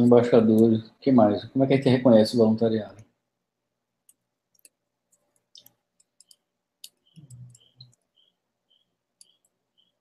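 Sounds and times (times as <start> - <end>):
mouse and keyboard clicks: 4.1 - 8.3.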